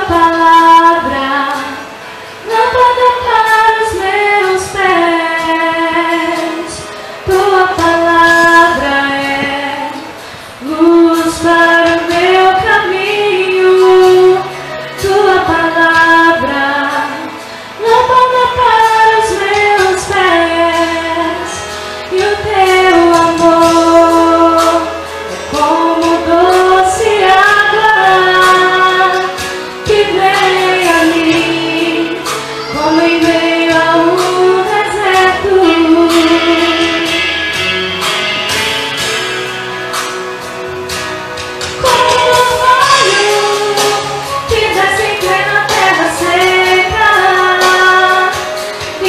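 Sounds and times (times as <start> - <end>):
woman singing into microphone: 0.0 - 49.0.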